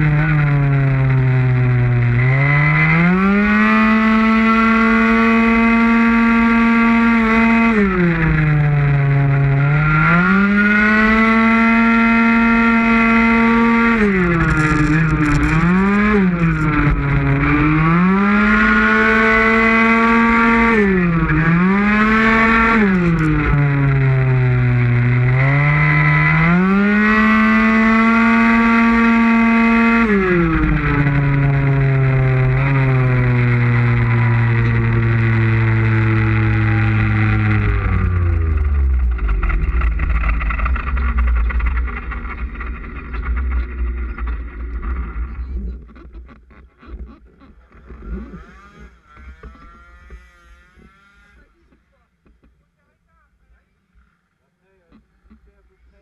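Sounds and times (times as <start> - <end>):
two-stroke scooter engine revving: 0.0 - 51.8.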